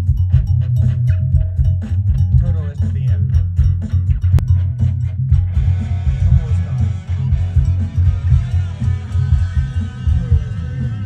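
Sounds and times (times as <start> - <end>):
pulsing bass line: 0.0 - 11.0
rock guitar: 2.0 - 11.0.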